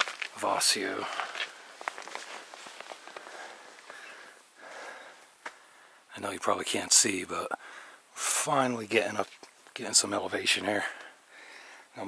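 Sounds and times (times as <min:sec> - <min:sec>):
footsteps on rocky dirt trail: 0:00.0 - 0:05.6.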